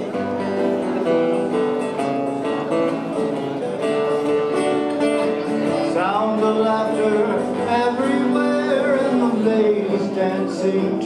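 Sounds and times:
acoustic guitar dance music: 0.0 - 11.0.

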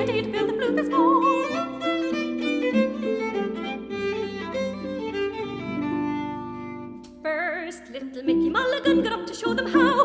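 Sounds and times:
harp accompaniment: 0.0 - 7.2
violin playing quick melody: 1.2 - 7.2.

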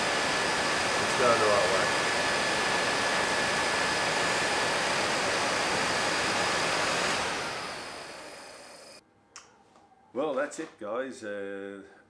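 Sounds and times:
electric radiator fan running: 0.0 - 9.0.

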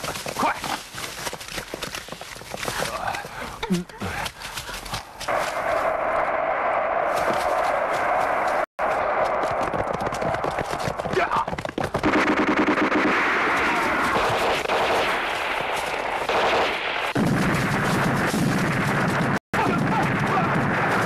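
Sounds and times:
rapid gunfire: 9.1 - 21.0
heavy deep battle din: 17.2 - 21.0.

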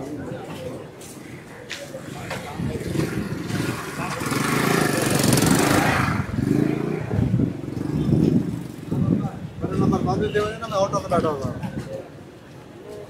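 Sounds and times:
street voices: 0.0 - 13.0
motorcycle passing by: 2.7 - 9.2.

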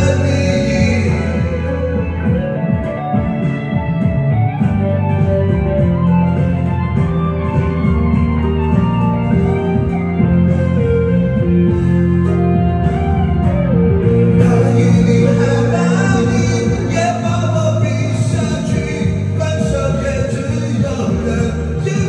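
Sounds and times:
person singing: 0.0 - 3.4, 14.0 - 22.0
guitar-like lead line: 0.0 - 22.0
pop ballad backing track: 0.0 - 22.0.

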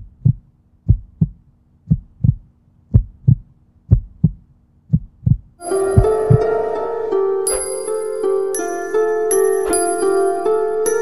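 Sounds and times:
heartbeat thumps: 0.0 - 6.6
bright chiming music: 5.6 - 11.0.

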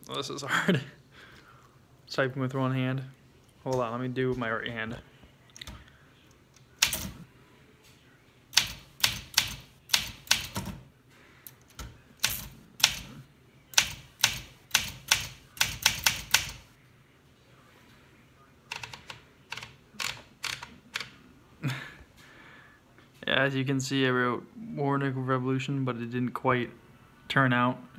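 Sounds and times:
typewriter keystrokes: 6.8 - 7.2, 8.6 - 10.8, 11.7 - 13.1, 13.8 - 16.7.

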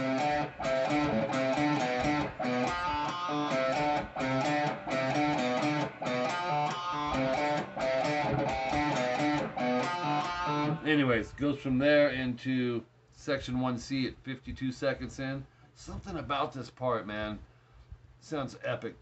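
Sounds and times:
electric guitar riff: 0.0 - 10.9.

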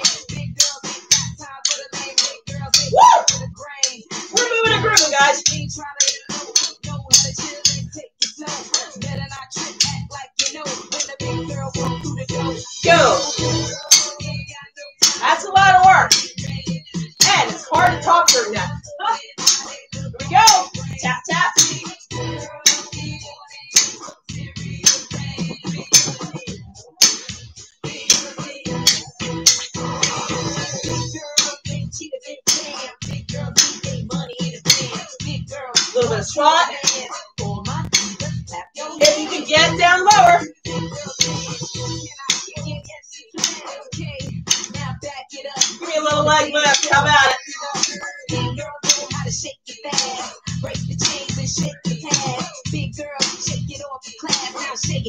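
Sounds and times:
drumsticks clicking: 0.0 - 3.4, 4.4 - 11.2, 13.9 - 14.2, 15.0 - 15.3, 19.4 - 19.7, 28.9 - 30.2, 34.7 - 35.0, 37.9 - 38.2, 39.0 - 39.4, 43.4 - 43.6, 44.5 - 44.8, 46.6 - 48.1, 48.8 - 49.2, 52.1 - 52.5
upbeat workout music with singing: 0.0 - 55.0.

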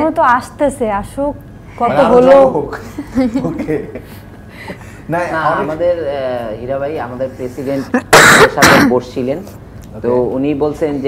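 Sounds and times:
person coughing: 7.9 - 9.0.

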